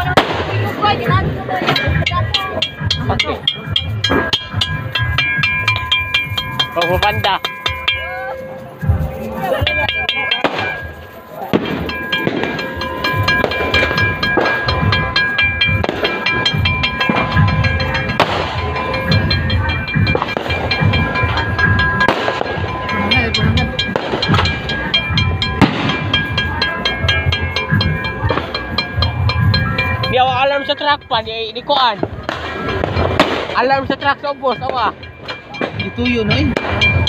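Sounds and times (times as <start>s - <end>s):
firecracker bangs: 0.0s - 7.7s, 10.0s - 26.5s, 32.0s - 37.0s
firecrackers crackling: 0.0s - 37.0s
music: 0.0s - 37.0s.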